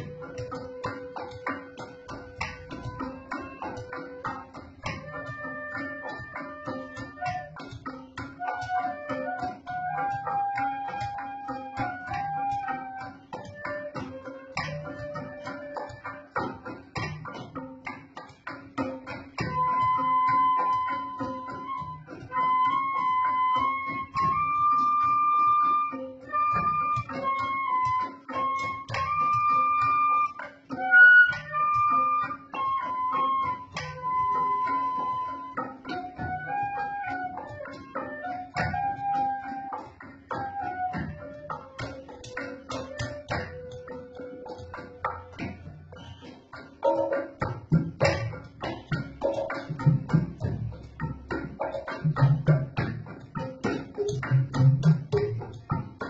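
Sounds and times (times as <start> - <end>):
bamboo flute melody: 0.0 - 56.0
struck bamboo and percussion: 0.0 - 56.0.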